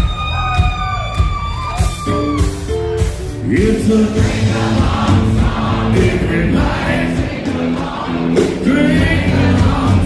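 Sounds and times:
country-rock band playing: 0.0 - 10.0.

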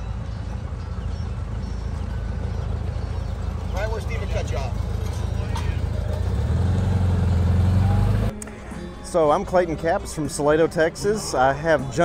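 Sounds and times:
car engine running: 1.6 - 8.3.

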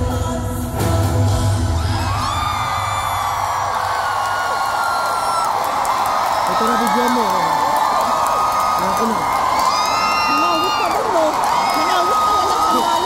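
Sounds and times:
crowd cheering and whooping: 1.6 - 13.0.

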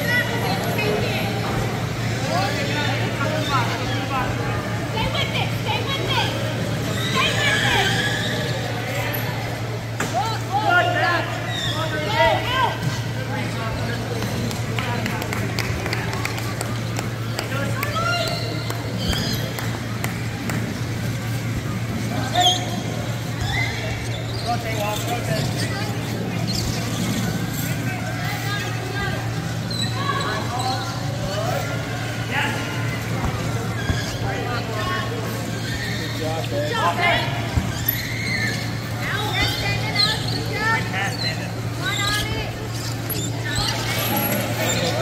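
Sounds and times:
clicks and squeaks on hardwood court: 0.0 - 10.4, 11.3 - 45.0
wheelchair tyres squeaking: 22.1 - 28.5, 33.4 - 45.0.

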